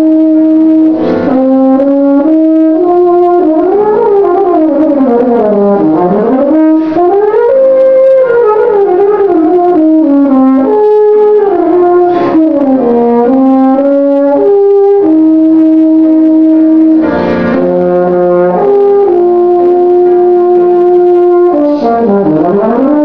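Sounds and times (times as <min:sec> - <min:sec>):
euphonium solo: 0:00.0 - 0:23.0.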